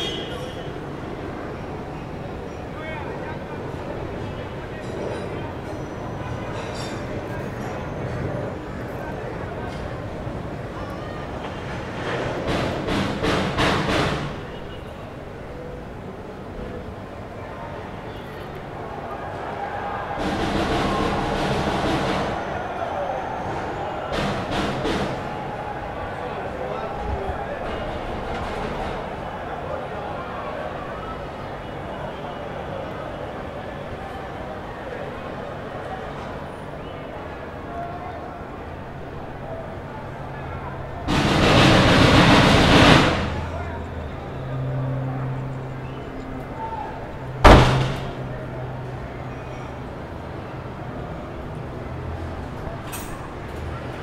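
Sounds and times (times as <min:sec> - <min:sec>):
loud rush of noise: 0:00.0 - 0:54.0
voices: 0:00.0 - 0:54.0
sharp bang: 0:41.1 - 0:43.6, 0:47.4 - 0:48.3.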